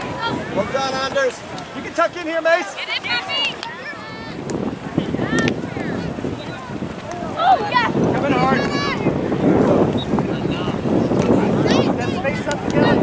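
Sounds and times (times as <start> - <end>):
people shouting: 0.0 - 1.2, 1.8 - 9.3
wind buffeting microphone: 0.0 - 13.0.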